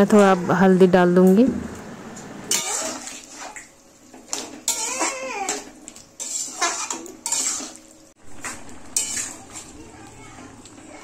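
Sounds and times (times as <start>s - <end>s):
spoon scraping curry in a pan: 2.5s - 3.6s, 4.2s - 10.6s.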